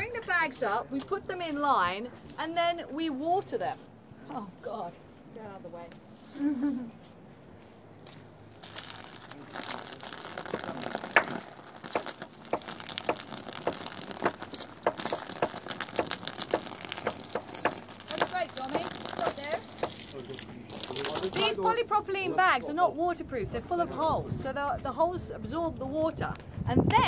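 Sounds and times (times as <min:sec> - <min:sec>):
dense crackling patter: 0:08.5 - 0:21.6
water spraying hiss: 0:08.6 - 0:21.3.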